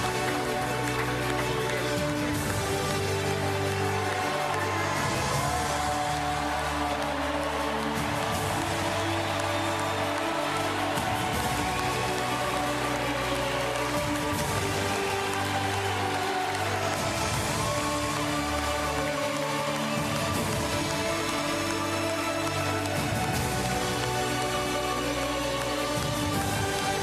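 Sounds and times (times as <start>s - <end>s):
arena crowd cheering: 0.0s - 27.0s.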